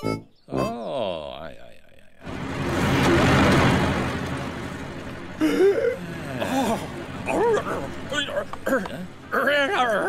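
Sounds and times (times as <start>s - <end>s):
cartoon tractor engine rumble: 1.8s - 10.0s.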